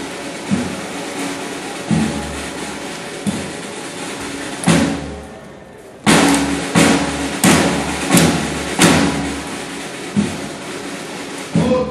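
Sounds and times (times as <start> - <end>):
military drum strokes: 0.0 - 11.9.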